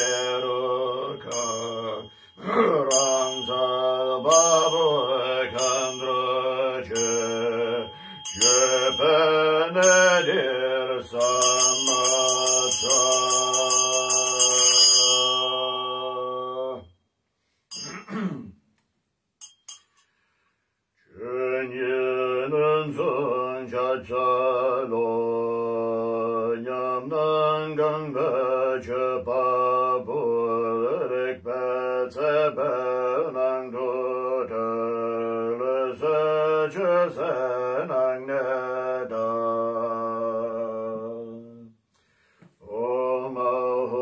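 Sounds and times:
hand bell ringing: 0:00.0 - 0:10.5, 0:11.2 - 0:16.1, 0:17.7 - 0:18.1, 0:19.4 - 0:20.0
man chanting: 0:00.0 - 0:16.8, 0:21.1 - 0:41.7
throat clearing: 0:17.8 - 0:18.7.

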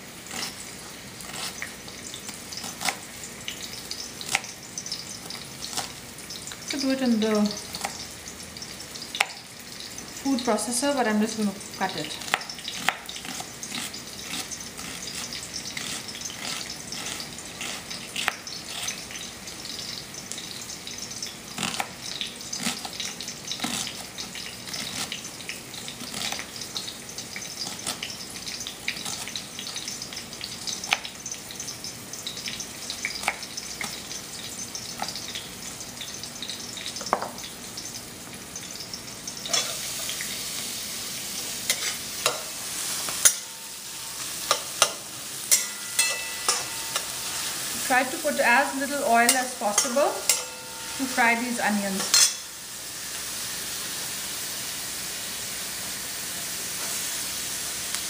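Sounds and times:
onions sizzling in oil: 0:00.0 - 0:58.0
spatula scraping metal pan: 0:39.5 - 0:40.1, 0:41.6 - 0:52.5.

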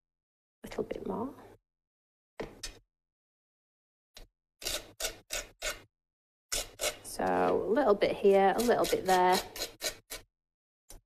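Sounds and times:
spatula scraping paste on card: 0:08.5 - 0:10.3.

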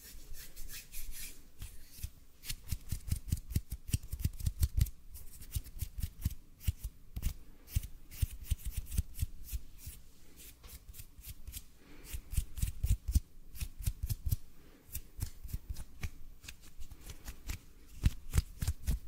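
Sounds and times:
hands rubbing and tapping: 0:00.5 - 0:09.3, 0:12.5 - 0:19.0.

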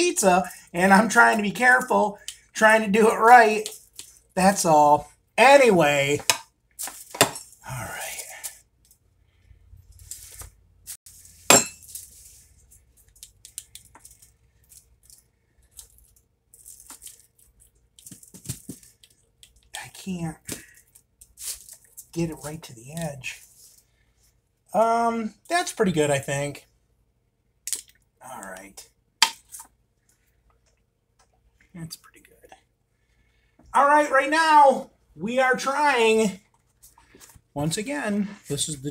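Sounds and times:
metal clink: 0:11.5 - 0:12.0.

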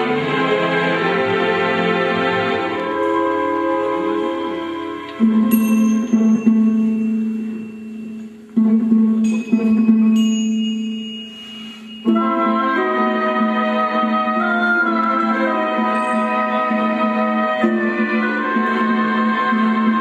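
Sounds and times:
chime-like high notes: 0:05.4 - 0:08.6, 0:09.2 - 0:12.9, 0:15.8 - 0:17.1.

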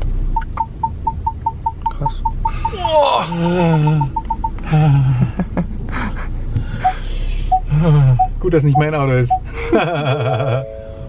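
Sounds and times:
parking sensor beeps: 0:00.3 - 0:04.8, 0:06.8 - 0:11.0.

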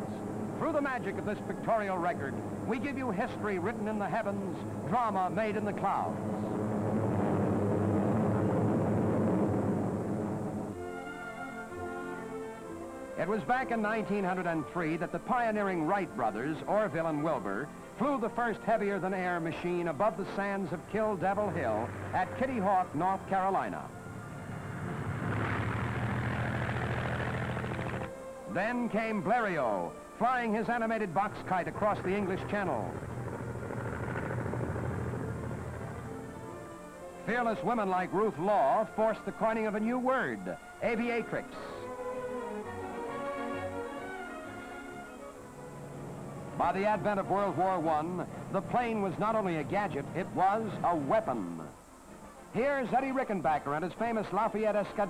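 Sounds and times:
airplane engine rumble: 0:00.0 - 0:17.7, 0:18.7 - 0:39.8, 0:45.2 - 0:53.0
propeller aircraft engine running: 0:06.2 - 0:10.8, 0:21.2 - 0:22.2, 0:24.0 - 0:28.2, 0:31.2 - 0:37.0.

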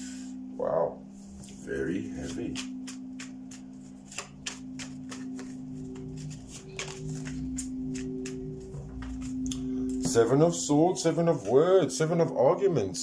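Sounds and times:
droning background music: 0:00.0 - 0:13.0
cards being shuffled: 0:02.2 - 0:09.5.

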